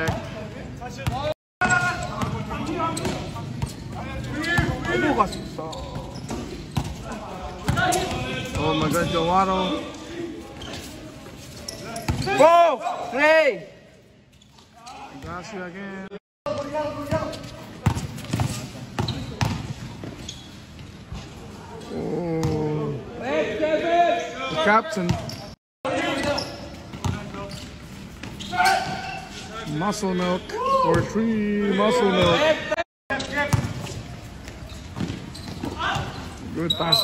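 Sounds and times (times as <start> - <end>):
sneaker squeaks: 1.0 - 13.2, 14.2 - 15.5, 16.6 - 22.6, 24.2 - 31.1, 33.1 - 37.0
basketball bouncing on court: 5.8 - 7.0, 17.0 - 20.9, 33.4 - 36.2
basketball bouncing: 17.1 - 20.1.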